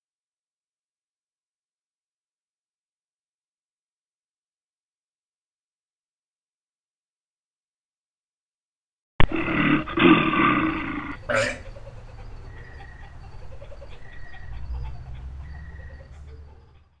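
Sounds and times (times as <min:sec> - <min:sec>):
loud animal roar: 0:09.2 - 0:11.7.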